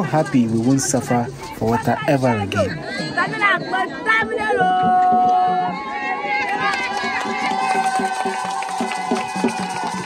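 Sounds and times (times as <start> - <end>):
women singing and calling out: 1.4 - 7.8.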